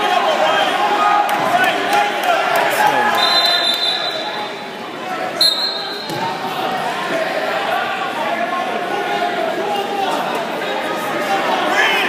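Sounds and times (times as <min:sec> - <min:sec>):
spectators chattering: 0:00.0 - 0:12.0.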